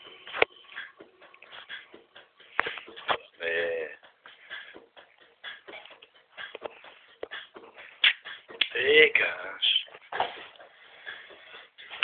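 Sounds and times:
shuffling noises: 9.5 - 12.0.

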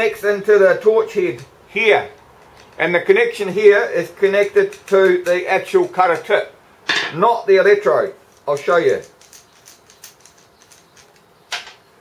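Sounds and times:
small metal parts clicking: 1.2 - 6.4, 8.3 - 11.8.

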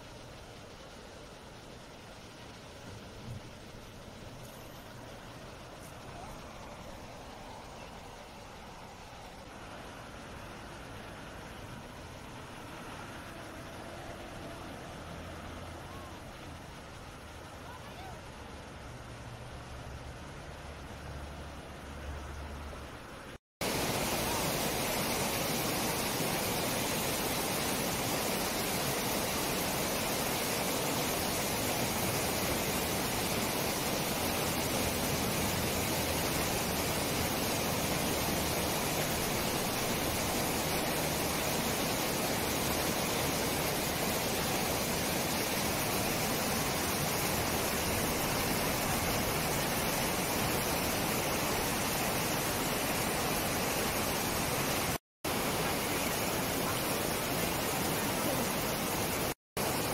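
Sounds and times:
water rushing over rocks: 0.0 - 59.9.

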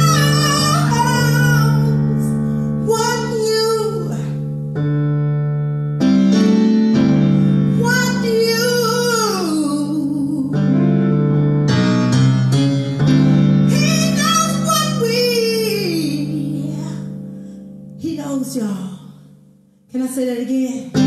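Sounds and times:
woman singing into microphone: 0.0 - 4.4, 7.8 - 10.7.

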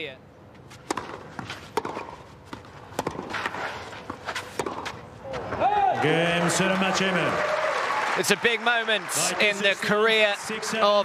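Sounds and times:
rackets striking tennis ball: 0.7 - 5.7
ball bouncing: 0.9 - 5.5.

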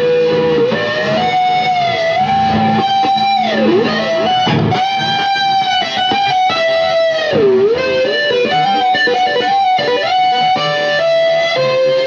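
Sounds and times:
electric guitar lead melody: 0.0 - 12.0.

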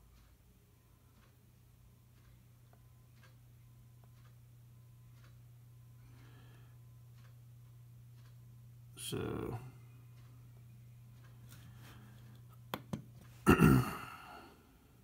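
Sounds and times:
low hum: 0.5 - 15.0
faint ticks: 2.1 - 8.5, 10.0 - 12.6.

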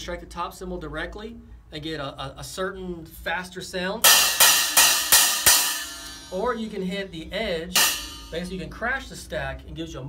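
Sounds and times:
cymbal stack crashes: 4.0 - 6.6, 7.8 - 8.5.

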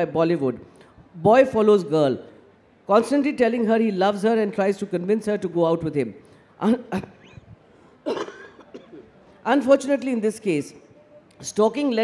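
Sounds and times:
person coughing: 6.9 - 9.2.

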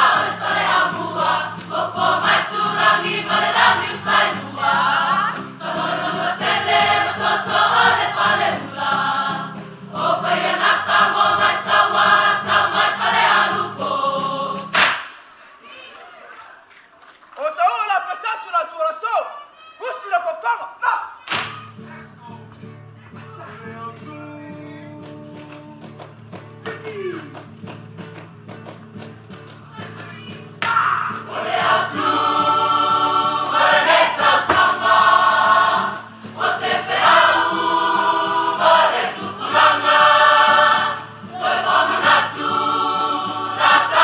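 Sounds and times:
group singing in chorus: 0.0 - 15.1, 30.8 - 44.0
loud voice calling out: 17.7 - 22.2, 26.7 - 27.4.

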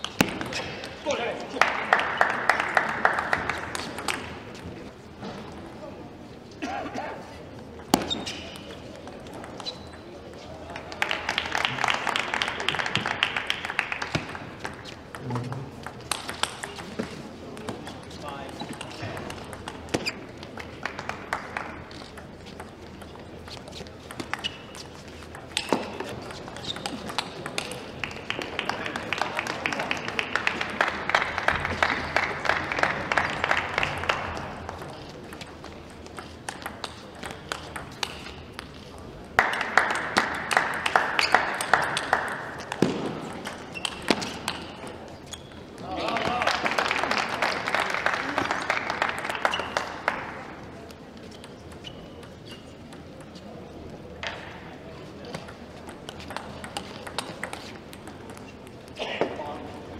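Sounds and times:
table tennis ball bouncing: 0.0 - 1.0, 3.3 - 4.7, 7.8 - 11.5, 12.8 - 28.8, 31.2 - 38.8, 39.4 - 45.8, 51.2 - 53.5, 54.2 - 58.9.

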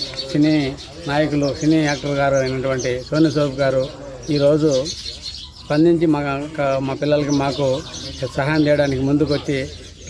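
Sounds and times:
birds chirping: 0.0 - 10.0
man speaking: 5.7 - 9.8.

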